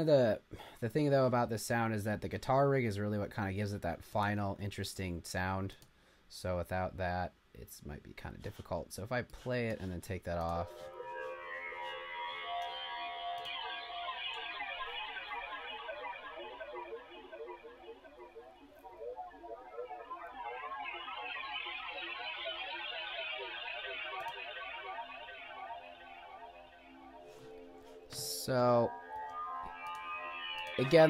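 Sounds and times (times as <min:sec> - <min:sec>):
dense synth texture: 0:10.7 - 0:31.0.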